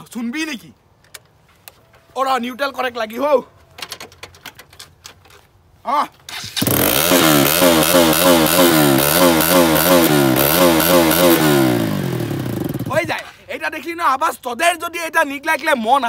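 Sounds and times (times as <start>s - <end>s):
motorcycle engine revving: 6.3s - 13.1s.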